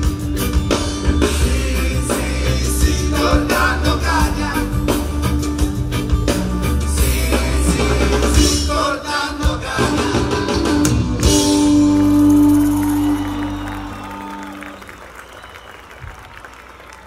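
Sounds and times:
crowd applauding and cheering: 0:11.2 - 0:17.0.

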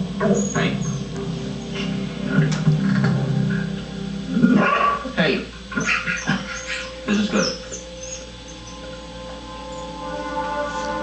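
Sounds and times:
background music from television: 0:00.0 - 0:11.0
dog yelping and whining: 0:05.7 - 0:08.9.

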